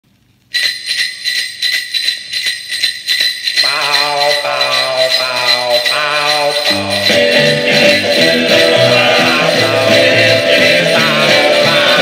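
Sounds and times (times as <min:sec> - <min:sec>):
sleigh bells shaking: 0:00.5 - 0:12.0
sustained vocal harmony: 0:03.7 - 0:12.0.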